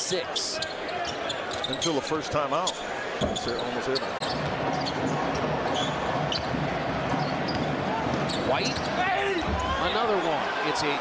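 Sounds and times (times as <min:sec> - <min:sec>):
arena crowd hubbub: 0:00.0 - 0:11.0
sneaker squeaks on hardwood: 0:02.7 - 0:06.5, 0:07.1 - 0:09.0.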